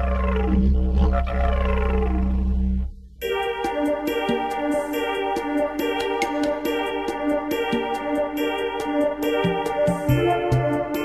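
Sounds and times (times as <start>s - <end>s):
didgeridoo droning: 0.0s - 3.2s.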